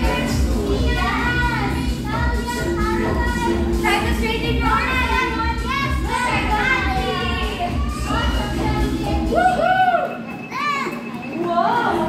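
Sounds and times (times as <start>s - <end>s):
children calling out and chattering: 0.0s - 12.0s.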